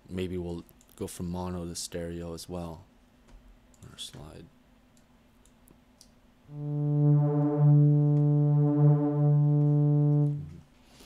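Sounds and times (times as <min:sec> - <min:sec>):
low buzzy synthesizer note: 0:06.5 - 0:10.6.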